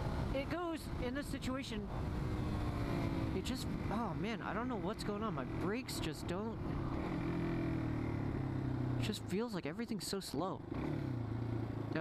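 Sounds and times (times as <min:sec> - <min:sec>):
motorcycle engine running: 0:01.9 - 0:09.3, 0:10.6 - 0:12.0.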